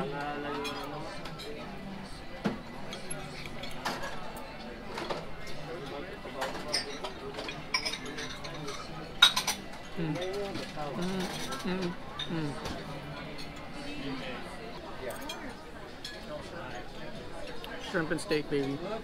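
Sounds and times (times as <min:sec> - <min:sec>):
diners chattering: 0:00.0 - 0:19.0
cutlery clinking on a plate: 0:04.9 - 0:13.6.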